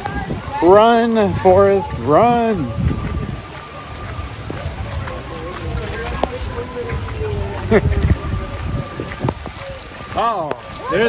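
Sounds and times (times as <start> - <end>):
heavy rain hissing: 0.0 - 11.0
wind rumbling on microphone: 0.0 - 11.0.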